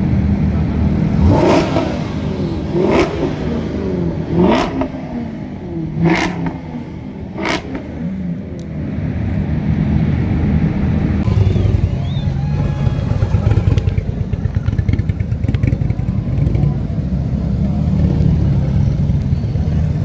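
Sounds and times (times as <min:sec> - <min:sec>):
car engine revving: 0:00.0 - 0:20.0
exhaust cracking: 0:00.6 - 0:20.0.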